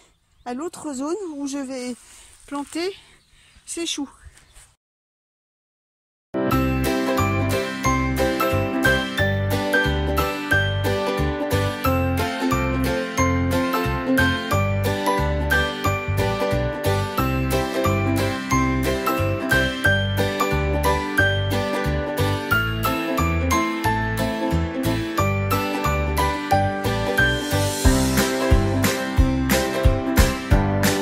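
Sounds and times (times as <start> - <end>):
bass notes: 6.4 - 31.0
upbeat plucked string music: 6.4 - 31.0.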